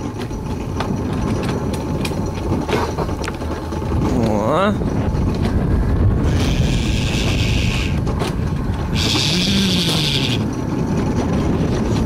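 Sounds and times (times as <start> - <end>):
coaster wheels rumbling on rail: 0.0 - 12.0
wind on microphone: 0.0 - 12.0.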